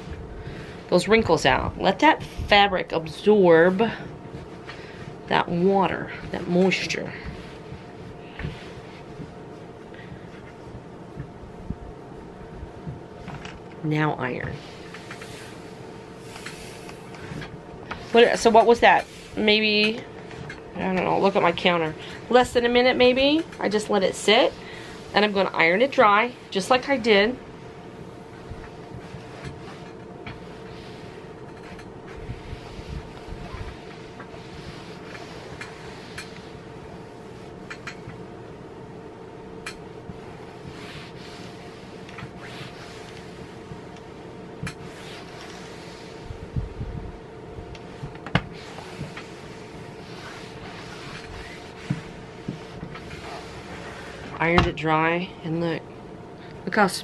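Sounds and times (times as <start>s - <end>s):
iron swishing over fabric: 0.0s - 10.8s, 13.1s - 38.2s, 40.0s - 54.9s
steady hum: 0.0s - 57.0s.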